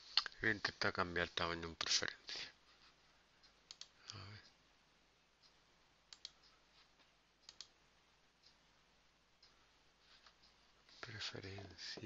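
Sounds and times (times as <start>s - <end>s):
faint computer mouse clicks: 3.7s - 4.2s, 5.4s - 6.6s, 7.4s - 7.7s.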